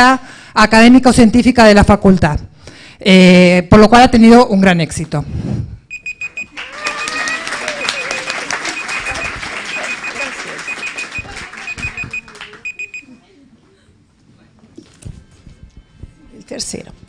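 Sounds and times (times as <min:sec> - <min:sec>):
electronic alarm beeping: 0:05.9 - 0:13.2
audience applauding: 0:06.3 - 0:13.0.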